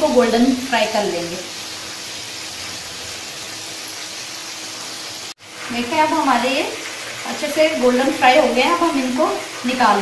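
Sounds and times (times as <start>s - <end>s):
chicken frying in hot oil: 0.0s - 10.0s.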